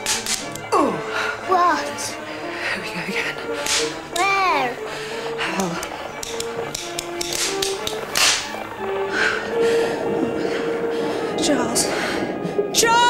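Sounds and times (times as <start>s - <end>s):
sharp cracks: 0.0s - 0.8s, 3.5s - 4.5s, 5.4s - 9.3s
held music notes: 0.0s - 13.0s.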